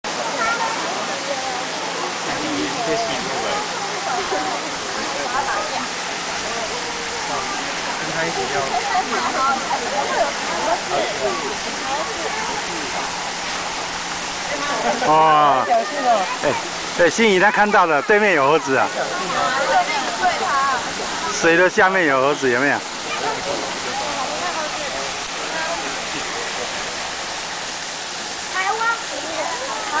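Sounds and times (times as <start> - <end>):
crowd of adults and children chattering: 0.0 - 30.0
running water rushing: 0.0 - 30.0.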